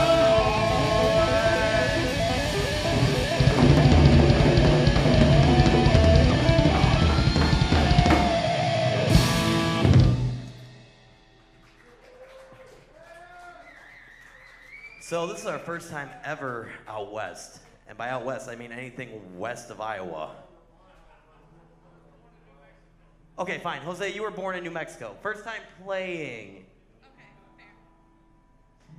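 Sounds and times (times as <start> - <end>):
bass guitar: 0.0 - 11.6
electric guitars: 0.0 - 11.6
drum kit: 0.0 - 11.7.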